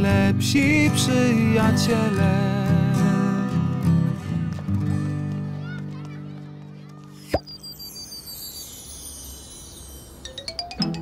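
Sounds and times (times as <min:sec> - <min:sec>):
pop with upward swoop: 0:07.2 - 0:08.0
glittering descending chime: 0:07.3 - 0:11.0.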